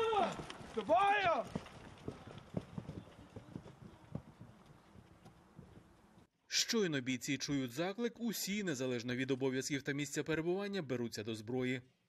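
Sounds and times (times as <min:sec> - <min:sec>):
running footsteps on earth: 0:00.0 - 0:06.3.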